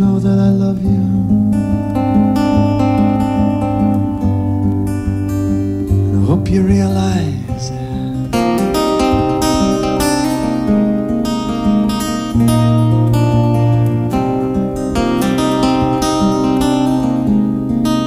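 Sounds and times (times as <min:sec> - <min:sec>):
acoustic guitar strumming: 0:00.0 - 0:18.0
deep bass note: 0:05.8 - 0:16.8.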